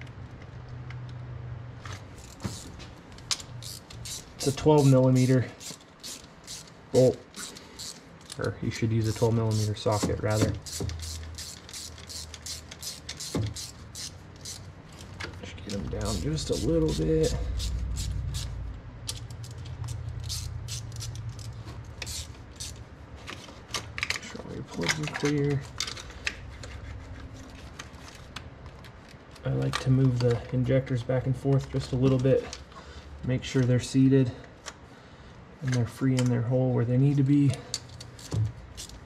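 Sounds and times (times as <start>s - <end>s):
ratchet wrench clicking: 2.2s - 14.7s, 15.7s - 22.8s, 37.7s - 39.0s.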